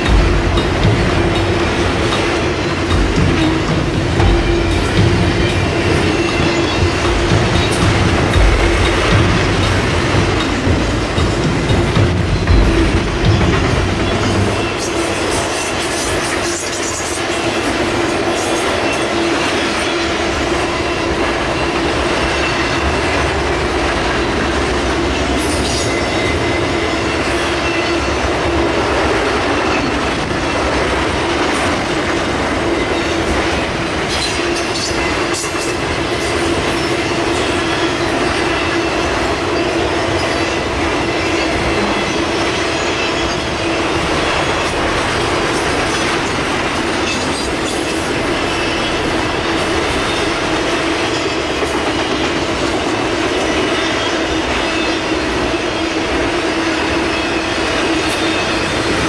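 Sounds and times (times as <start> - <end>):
freight train rumbling past: 0.0 - 59.0.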